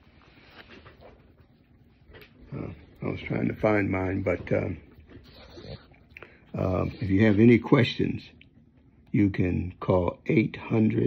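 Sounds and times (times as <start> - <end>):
man saying uh: 2.5 - 4.8, 6.5 - 8.3.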